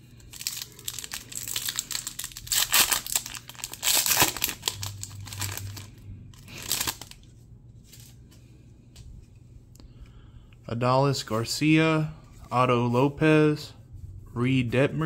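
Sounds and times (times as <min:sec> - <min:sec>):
foil wrapper tearing and crinkling: 0:00.0 - 0:07.3.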